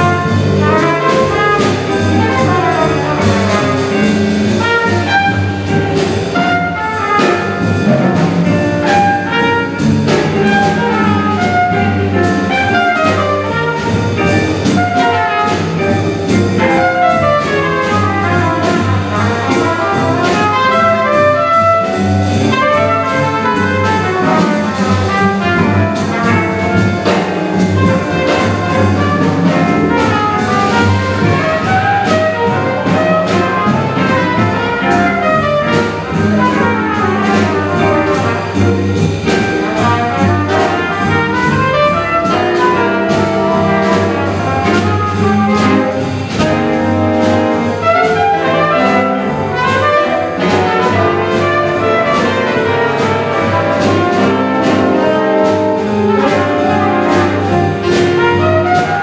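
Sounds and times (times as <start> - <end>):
jazz band playing: 0.0 - 59.0
trumpet: 0.0 - 59.0.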